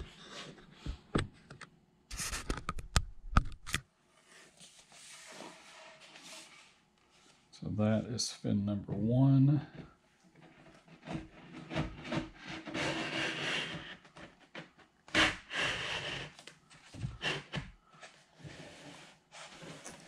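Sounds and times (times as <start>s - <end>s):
tube rubbing and scraping over wood: 4.9s - 6.8s, 10.4s - 17.7s, 18.3s - 20.0s.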